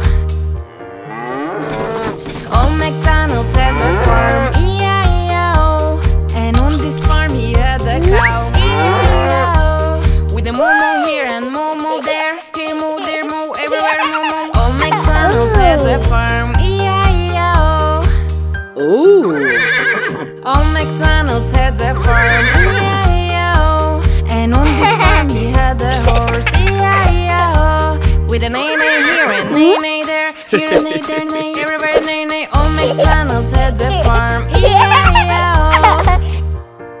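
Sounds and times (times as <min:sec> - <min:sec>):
song backing music: 0:00.0 - 0:37.0
cow mooing: 0:00.7 - 0:02.2, 0:03.6 - 0:04.6, 0:08.6 - 0:09.6
horse neighing: 0:03.7 - 0:04.6, 0:08.6 - 0:09.6, 0:19.2 - 0:20.4, 0:22.0 - 0:23.1, 0:28.6 - 0:29.6.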